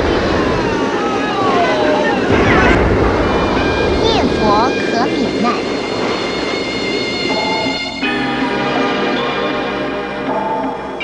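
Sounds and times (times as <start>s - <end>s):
heavy rain: 0.0s - 9.1s.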